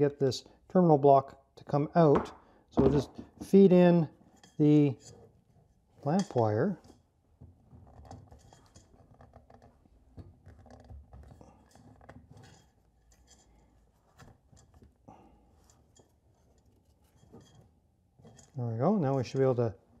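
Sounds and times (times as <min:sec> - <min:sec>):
wire scratching and clicking: 0:07.7 - 0:19.6.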